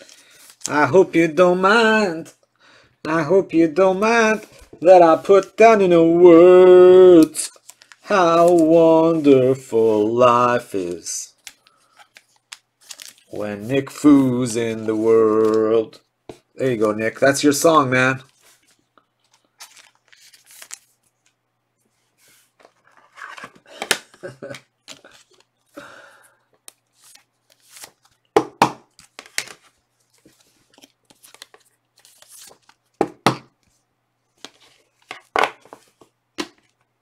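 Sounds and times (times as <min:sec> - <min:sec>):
cards and plastic sleeves rustling: 0:00.0 - 0:02.5, 0:03.1 - 0:37.0.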